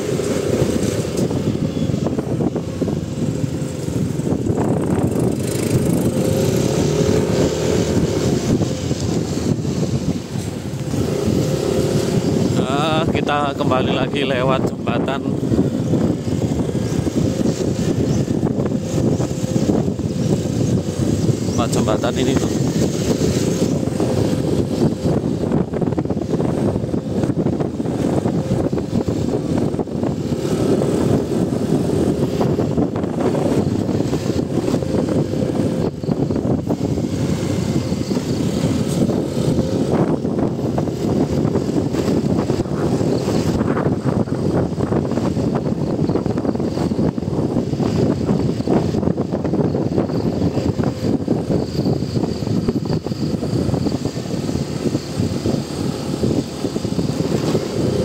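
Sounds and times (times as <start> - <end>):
motorcycle engine running: 0.0 - 58.0
wind rumbling on microphone: 0.0 - 58.0.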